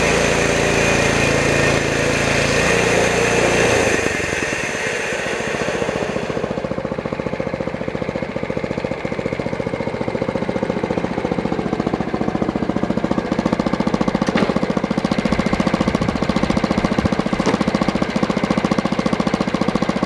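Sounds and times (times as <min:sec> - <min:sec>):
small petrol engine running: 0:00.0 - 0:20.0.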